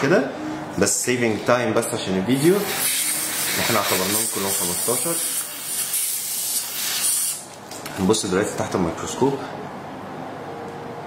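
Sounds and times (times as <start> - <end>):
dental syringe spray hiss: 2.4 - 7.4.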